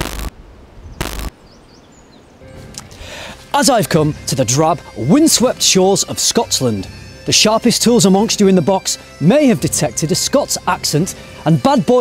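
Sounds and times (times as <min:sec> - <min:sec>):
digital glitch static bursts: 0:00.0 - 0:00.3, 0:01.0 - 0:01.3.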